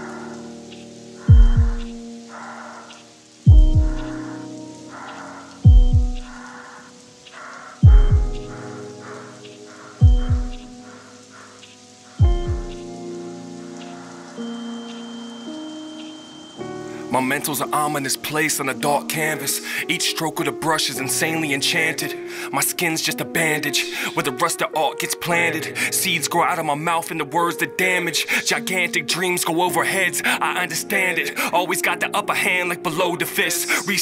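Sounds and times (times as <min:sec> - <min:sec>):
rain-like hiss: 0:00.0 - 0:34.0
sustained low chords: 0:01.3 - 0:02.0, 0:03.5 - 0:04.2, 0:05.7 - 0:06.4, 0:07.8 - 0:08.6, 0:10.0 - 0:10.8, 0:12.2 - 0:12.9
deep falling bass hits: 0:07.8 - 0:08.5.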